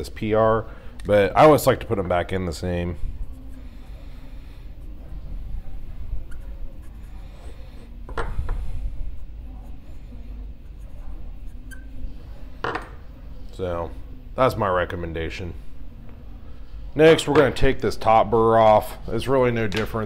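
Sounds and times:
marker rubbing on metal: 4.6 - 7.9, 9.5 - 12.1.

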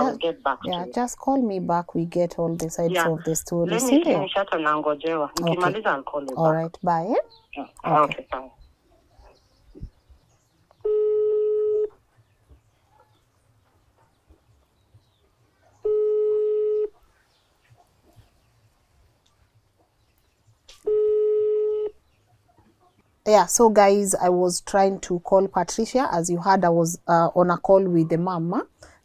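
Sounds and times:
phone ringback tone: 10.8 - 11.9, 15.9 - 17.0, 20.9 - 22.0.

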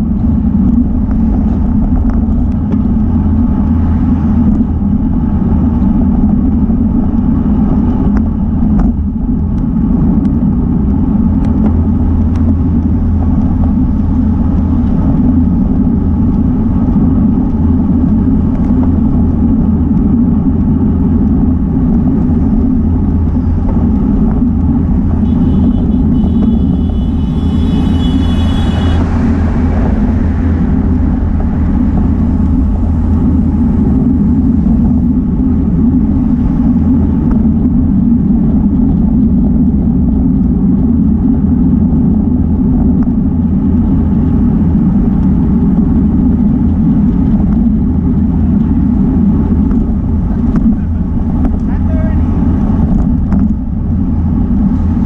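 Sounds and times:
tyre and road noise: 0.0 - 55.0
wind buffeting microphone: 0.0 - 55.0
brief high whine: 25.2 - 31.0.

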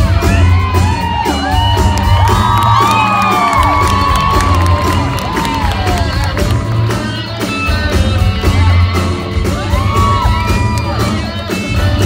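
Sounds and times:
crowd whooping and cheering: 0.0 - 7.5, 8.5 - 12.0
live rock band playing loudly: 0.0 - 12.0.

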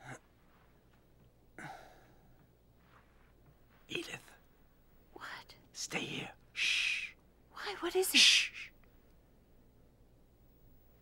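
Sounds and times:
person whispering: 3.9 - 4.4, 5.1 - 8.7.

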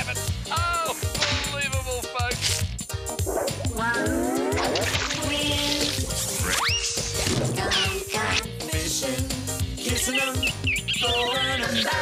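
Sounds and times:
cartoon theme music: 0.0 - 12.0
dog barking and yipping: 3.2 - 3.7.

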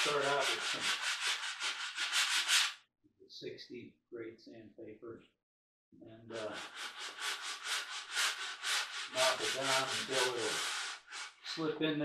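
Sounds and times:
sandpaper sanding wood: 0.0 - 2.8, 6.3 - 11.6.

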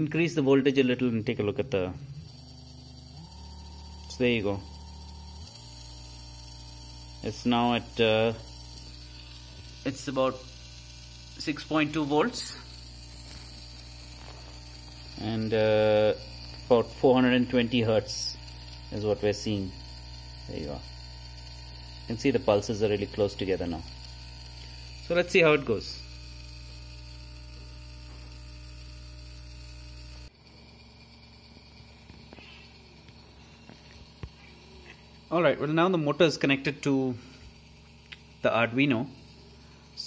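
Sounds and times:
small motor humming: 0.0 - 40.0.

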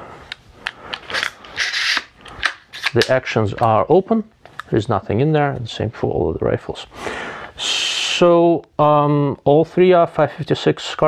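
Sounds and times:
rifle action sliding: 0.9 - 3.2.

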